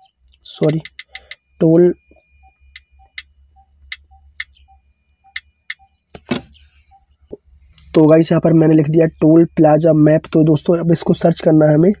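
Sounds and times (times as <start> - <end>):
faint even ticking: 0.0 - 6.1
touchscreen keyboard clicks: 0.6 - 1.4.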